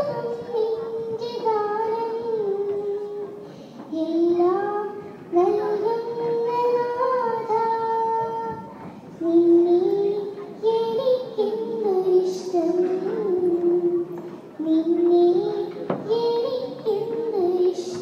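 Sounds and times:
girl singing into a microphone: 0:00.0 - 0:18.0.

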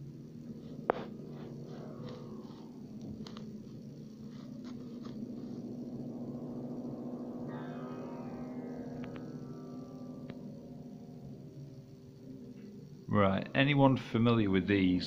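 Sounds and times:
low droning chord: 0:00.0 - 0:15.0
high tone sliding downward: 0:00.9 - 0:13.5.

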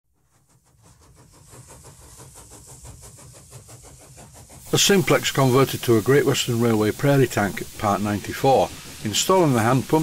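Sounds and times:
steam locomotive chuffing: 0:00.2 - 0:10.0.

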